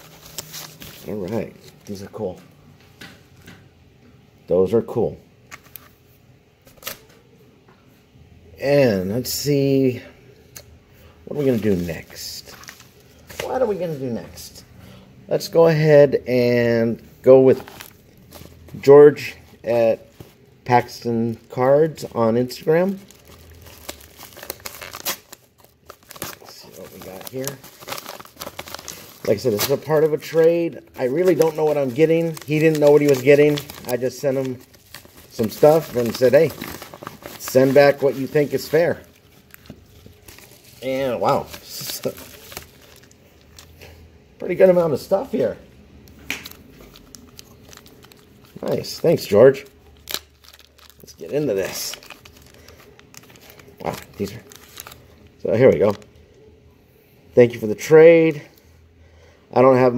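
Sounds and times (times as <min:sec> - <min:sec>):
paper mailer crinkling: 0:17.5 - 0:43.8, 0:46.4 - 0:56.0.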